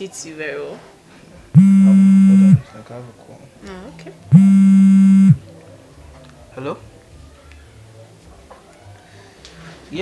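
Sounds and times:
mobile phone ringing buzz: 1.6 - 2.6, 4.3 - 5.4.

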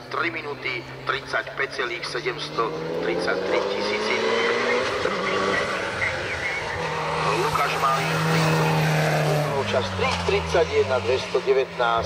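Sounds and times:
car engine at high revs: 0.0 - 12.0.

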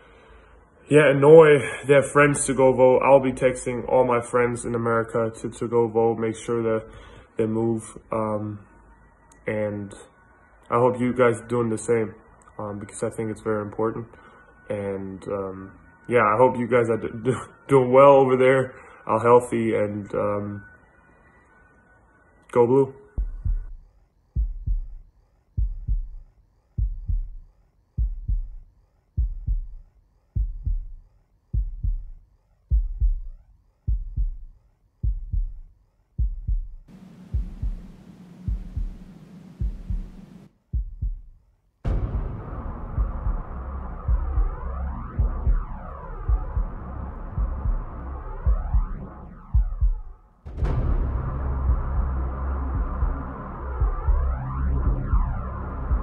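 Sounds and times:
deep bass thump: 23.2 - 23.8, 24.4 - 25.0, 25.6 - 26.2, 26.8 - 27.4, 28.0 - 28.6, 29.2 - 29.8, 30.4 - 31.0, 31.6 - 33.3, 33.9 - 35.6, 36.2 - 56.0
low steady hum: 36.2 - 41.2, 41.9 - 56.0
electronic dance music: 42.5 - 50.2, 50.9 - 56.0.

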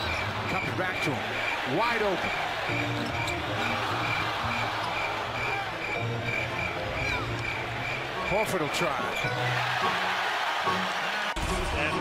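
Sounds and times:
arena crowd noise: 0.0 - 12.0
music: 2.6 - 12.0.

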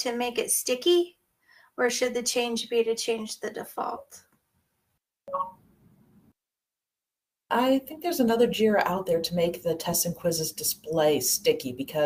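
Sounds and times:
brief pitched tone: 5.3 - 5.6.

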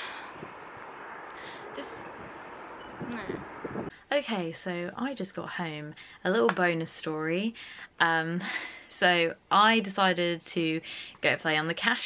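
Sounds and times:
wind on microphone: 0.0 - 3.9.

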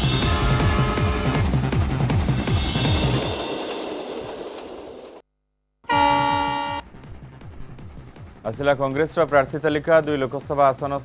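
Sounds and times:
train air horn blast: 0.2 - 1.4, 5.9 - 6.8.

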